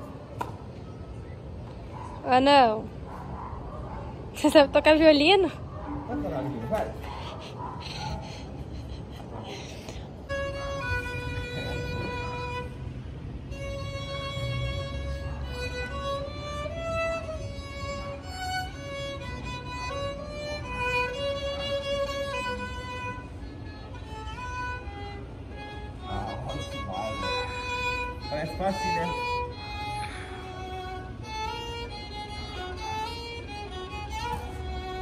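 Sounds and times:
solo violin melody: 10.2 - 35.0.

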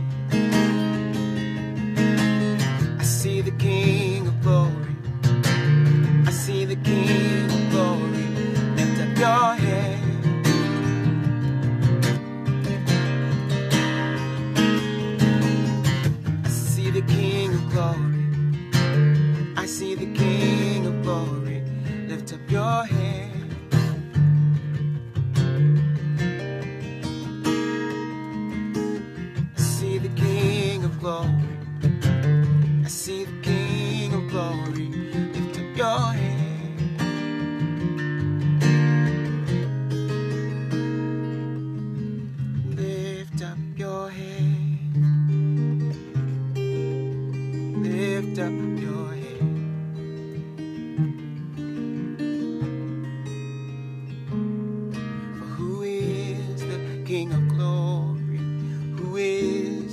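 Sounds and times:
acoustic guitar chords: 0.0 - 59.9.

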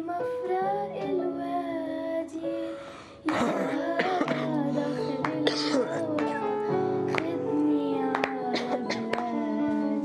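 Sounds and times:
girl singing into a microphone: 0.0 - 10.0.

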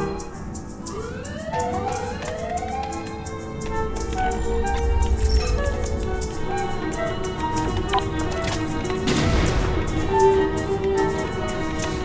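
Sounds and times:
background music with drone: 0.0 - 12.0
alarm siren wailing: 0.8 - 5.9.

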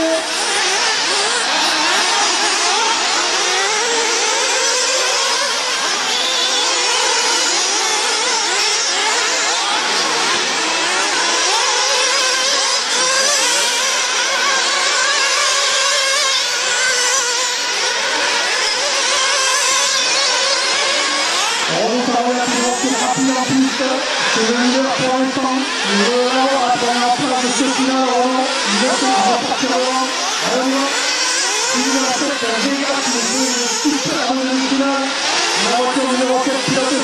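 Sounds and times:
model car engines revving: 0.0 - 37.0.

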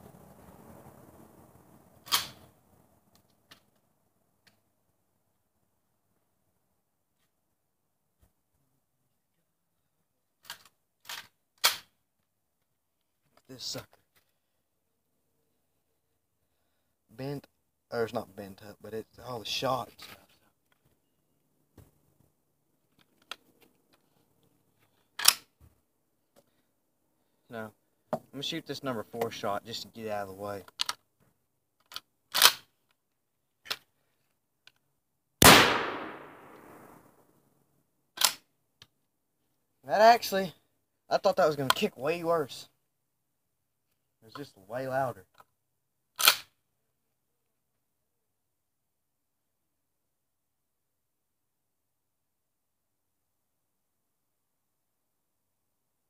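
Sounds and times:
shotgun shot with echo: 35.4 - 37.0.

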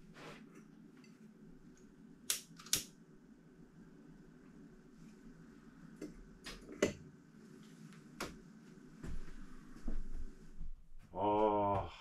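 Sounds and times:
sharp click: 2.3 - 2.9.

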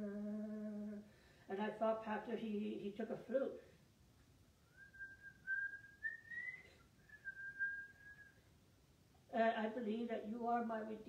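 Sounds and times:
man whistling a tune: 4.7 - 8.4.

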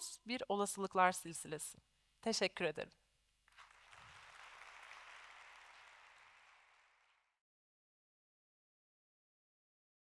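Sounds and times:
faint audience applause: 3.5 - 7.4.

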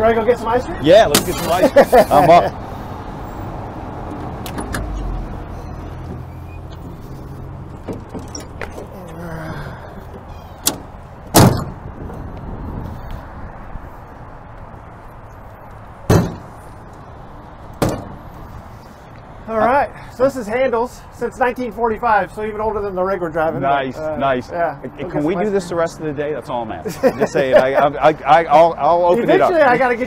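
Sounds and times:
metal door shutting: 4.4 - 5.1, 7.8 - 9.0, 10.2 - 11.8
sharp knocks: 16.1 - 16.5, 17.8 - 18.2.

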